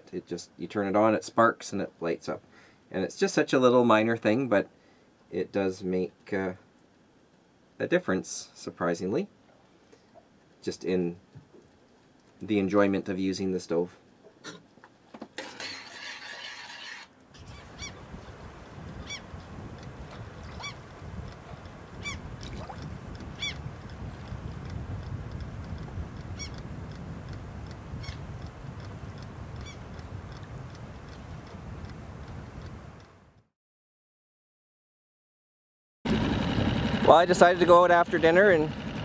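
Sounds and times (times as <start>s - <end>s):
short high bird calls: 17.4s - 18.0s, 19.0s - 19.3s, 20.4s - 20.8s, 22.0s - 22.3s, 23.4s - 23.6s, 26.4s - 26.6s, 28.0s - 28.2s, 29.6s - 29.9s
wind noise: 17.4s - 33.3s.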